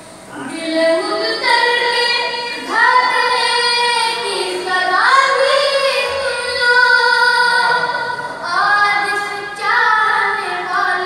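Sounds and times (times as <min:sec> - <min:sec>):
boy singing: 0:00.3 - 0:11.0.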